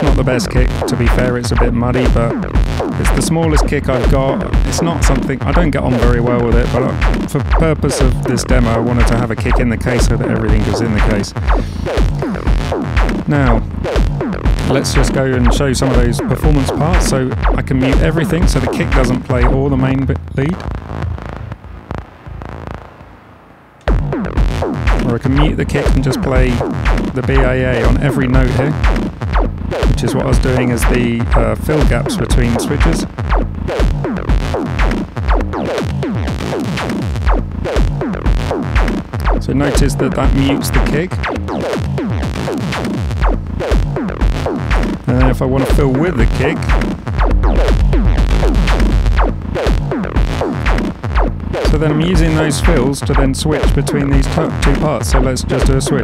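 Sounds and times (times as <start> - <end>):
electronic synthesizer groove: 0.0 - 56.0
falling-pitch synth notes: 0.0 - 56.0
heavy bass: 0.0 - 56.0.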